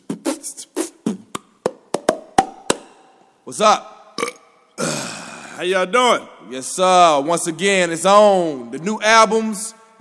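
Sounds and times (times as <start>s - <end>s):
beatboxed mouth clicks: 0.0s - 3.0s.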